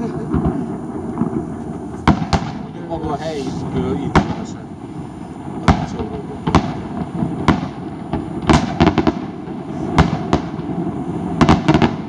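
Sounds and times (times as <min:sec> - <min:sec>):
firework shells bursting: 0:00.0 - 0:12.0.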